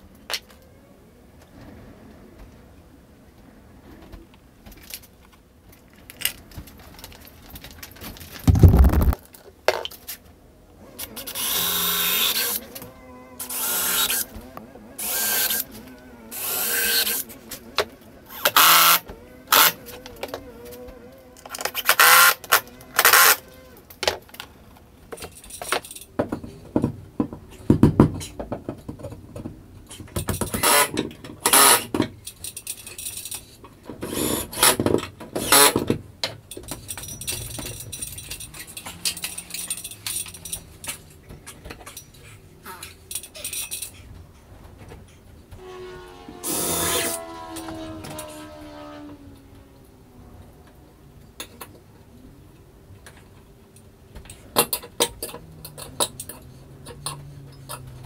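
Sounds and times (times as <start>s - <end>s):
cordless drill whining: 11.1s - 14.4s, 15.0s - 15.7s, 16.3s - 17.3s, 18.3s - 19.8s, 46.4s - 47.2s
handling knocks and clatter: 34.6s - 45.6s.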